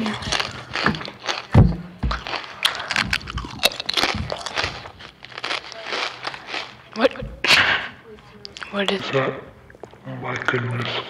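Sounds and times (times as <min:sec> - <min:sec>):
chips crunching while chewed: 0:00.0 - 0:07.2.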